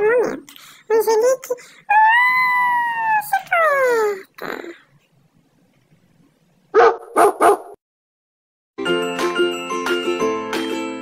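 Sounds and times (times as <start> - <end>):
dog barking: 6.7 - 7.8.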